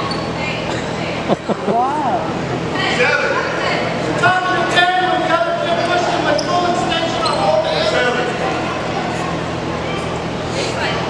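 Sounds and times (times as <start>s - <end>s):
indistinct voices echoing in gym: 0.0s - 11.0s.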